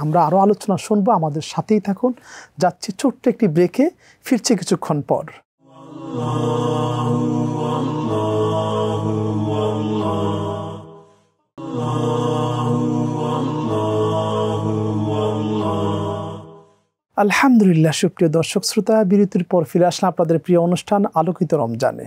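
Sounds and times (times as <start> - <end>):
chant-like music chords: 5.6 - 16.6.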